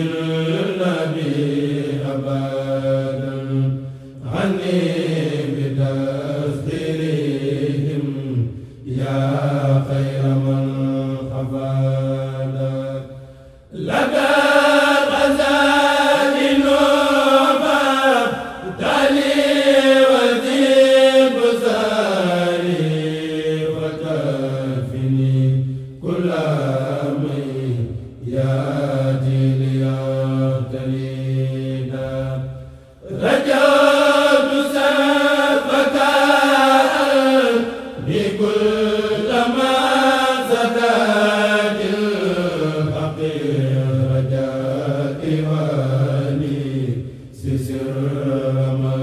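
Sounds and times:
male choir chanting: 0.0s - 49.0s.

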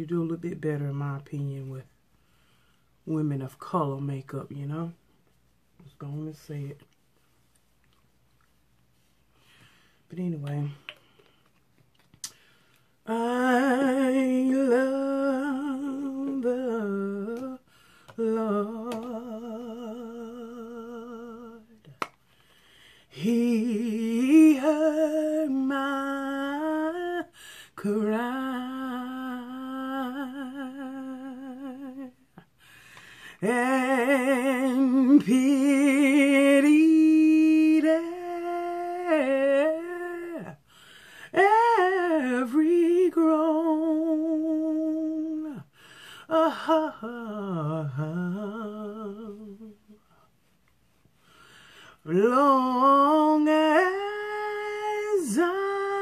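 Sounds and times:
woman singing wordless notes: 13.0s - 21.9s, 23.1s - 32.2s, 33.4s - 40.6s, 41.3s - 45.7s, 52.0s - 56.0s.

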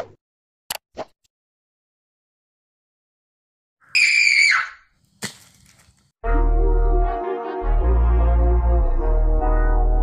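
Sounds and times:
high-pitched scream: 3.9s - 4.8s
sharp crack: 5.1s - 6.1s.

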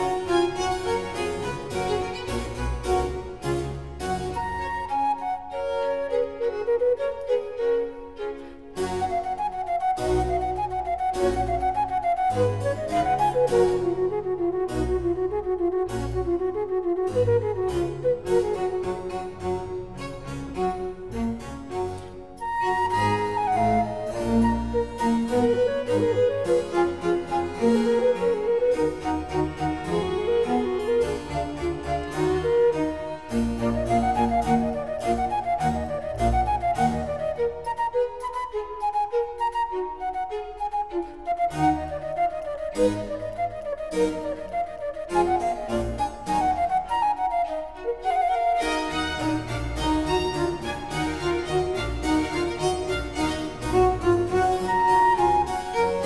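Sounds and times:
flute melody: 0.0s - 56.0s
violins playing: 0.0s - 56.0s.

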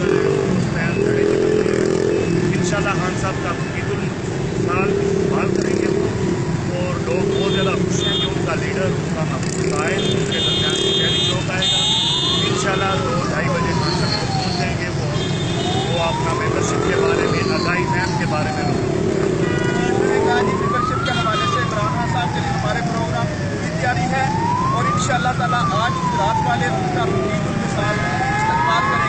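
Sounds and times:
siren wailing: 0.0s - 29.0s
street traffic: 0.0s - 29.0s.

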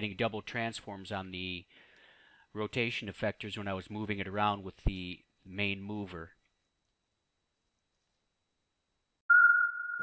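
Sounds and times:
high electronic beep: 9.3s - 10.0s.

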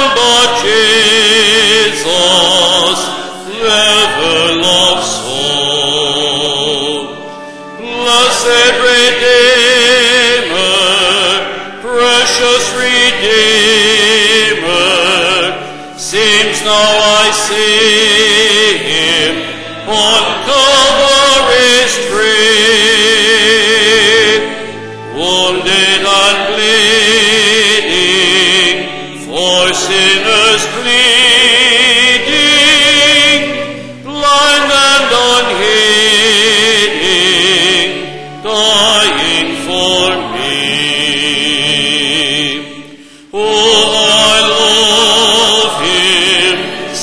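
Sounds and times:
voices singing a hymn: 0.0s - 47.0s.

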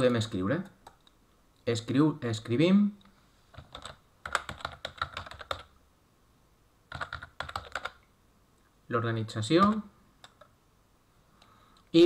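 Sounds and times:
typing on computer keyboard: 3.6s - 5.7s, 6.9s - 8.0s.

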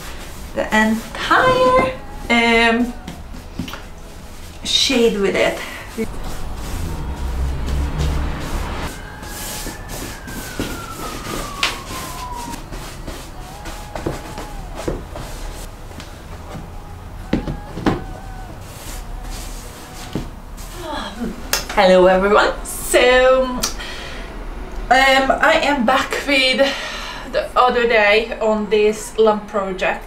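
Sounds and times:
background music: 0.0s - 25.6s
falling sliding tone: 0.0s - 29.3s.

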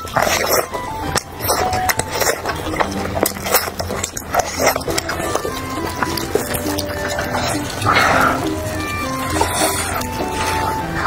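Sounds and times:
background music: 0.0s - 11.0s
crunching and wet chewing: 0.0s - 11.0s.

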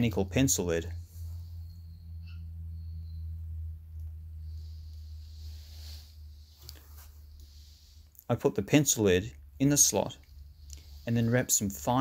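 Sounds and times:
low steady hum: 0.0s - 12.0s
faint soft rustle: 4.4s - 8.4s.

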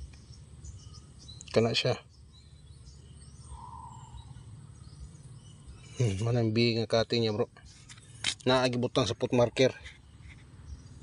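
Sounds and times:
distant bird chirps: 0.0s - 11.0s.

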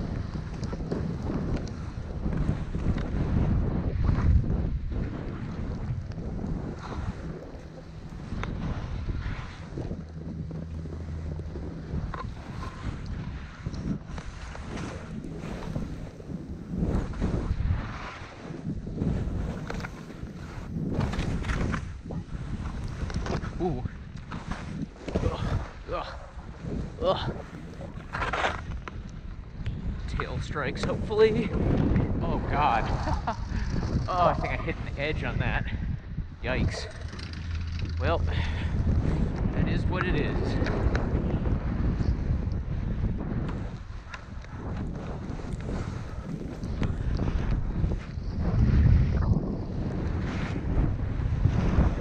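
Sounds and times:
skis running through snow: 0.0s - 31.6s, 36.7s - 52.0s
wind rumbling on microphone: 0.0s - 52.0s.

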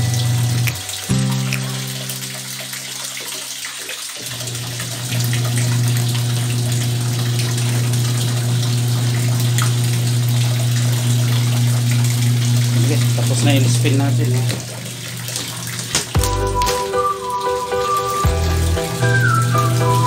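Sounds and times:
washing machine motor humming: 0.0s - 20.0s.

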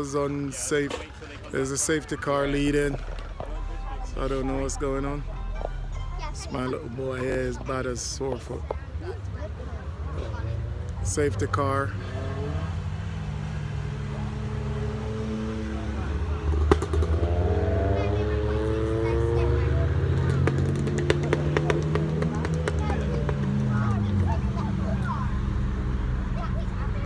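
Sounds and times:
race cars driving past: 0.0s - 27.0s.

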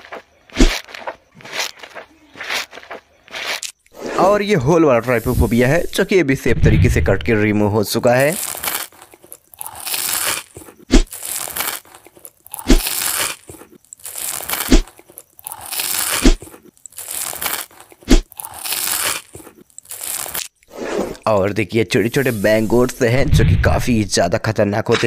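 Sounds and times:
gritty scraping crunch: 0.0s - 4.3s, 7.0s - 21.3s.

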